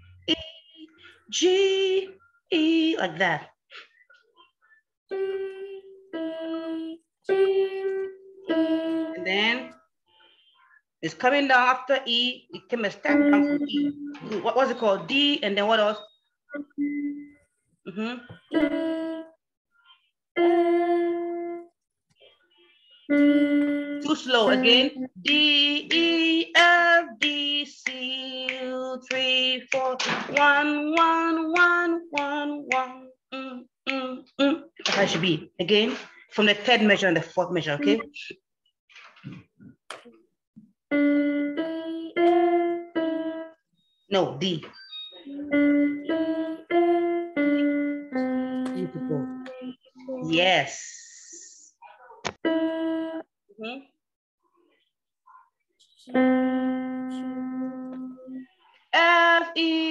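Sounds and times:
electronic keyboard notes: 13.1s - 14.3s, 45.0s - 49.7s, 56.1s - 58.4s.

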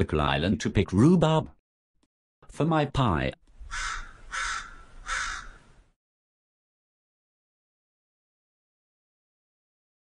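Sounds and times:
harsh bird caw: 3.7s - 5.8s.

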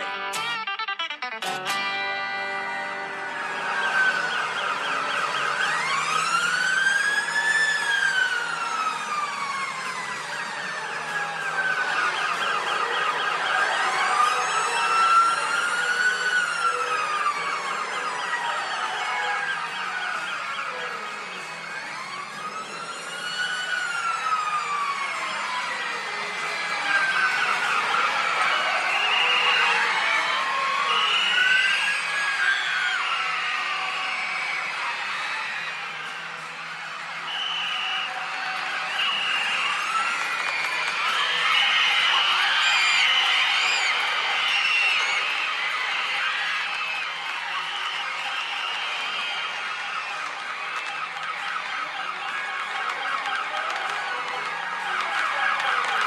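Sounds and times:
siren-like wailing tone: 0.0s - 56.0s.

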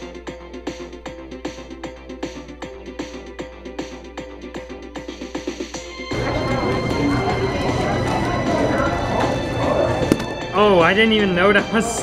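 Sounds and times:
music with a steady beat: 0.0s - 12.0s
murmur of a busy room: 6.1s - 12.0s.

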